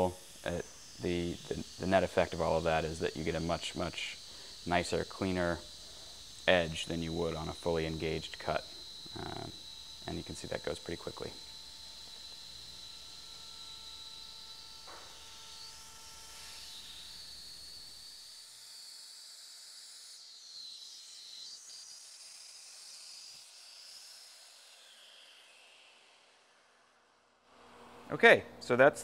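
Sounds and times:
router spindle whining: 0:00.0 - 0:27.0.

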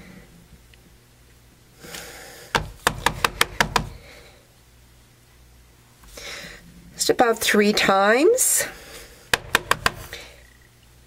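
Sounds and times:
rubber stamp tapping: 0:02.5 - 0:04.1, 0:09.3 - 0:10.2.

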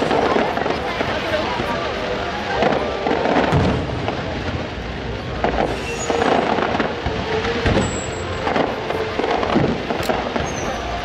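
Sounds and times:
fireworks booming: 0:00.0 - 0:11.0
fireworks crackling: 0:00.0 - 0:11.0.

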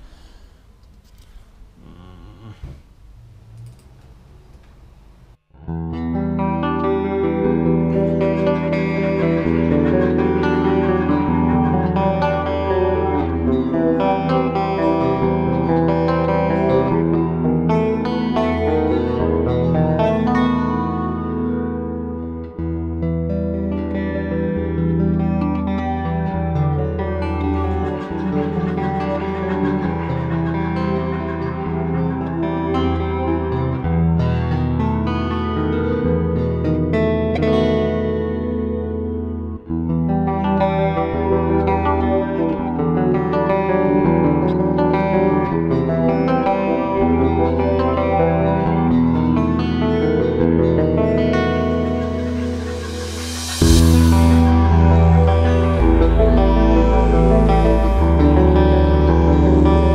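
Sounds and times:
distorted electric guitar: 0:05.6 - 0:59.9.

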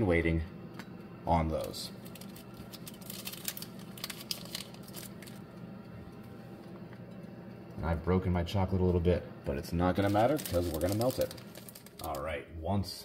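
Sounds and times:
air fryer humming: 0:00.0 - 0:13.0
chocolate crinkling and breaking: 0:01.6 - 0:05.5, 0:10.0 - 0:12.2.

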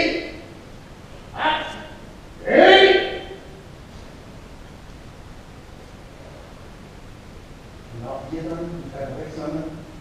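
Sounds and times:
person shouting: 0:01.4 - 0:03.5.

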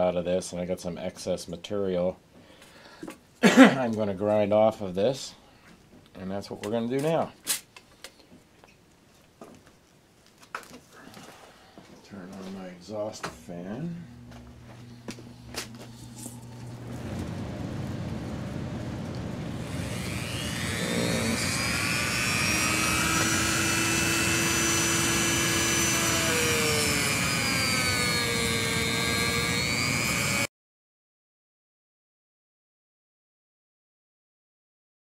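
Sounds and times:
exhaust fan rushing air: 0:12.8 - 0:30.5
rotary tool whining: 0:14.0 - 0:30.5.

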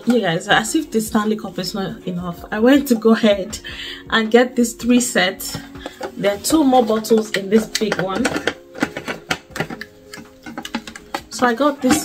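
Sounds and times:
plastic bottle lid clicks: 0:07.1 - 0:12.0.

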